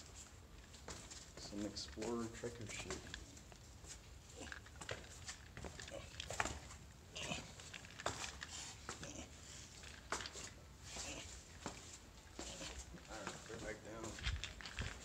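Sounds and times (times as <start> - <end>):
footsteps on wet rock: 0.8 - 15.0.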